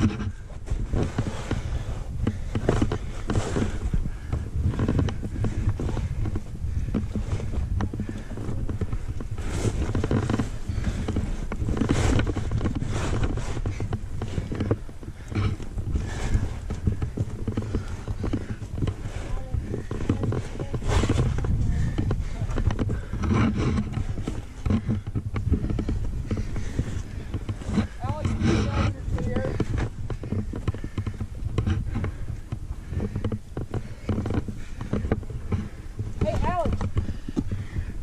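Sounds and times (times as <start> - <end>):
hands and feet scraping on rock: 0.0 - 38.0
heavy breathing: 0.0 - 38.0
wind rumbling on microphone: 0.0 - 38.0.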